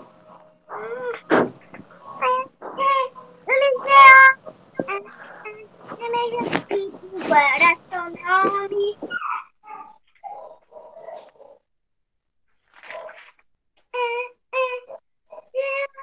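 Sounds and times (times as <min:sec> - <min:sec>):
child chanting: 0:02.1 - 0:09.2, 0:14.0 - 0:16.0.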